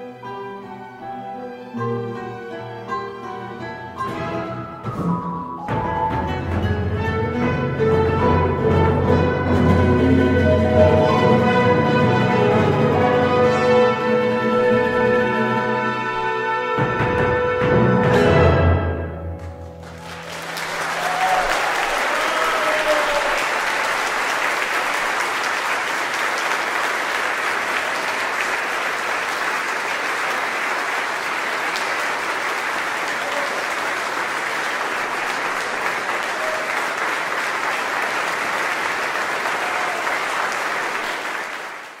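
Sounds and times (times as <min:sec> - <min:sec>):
audience applauding: 0:19.4 - 0:42.0
faint shouts: 0:21.2 - 0:23.4.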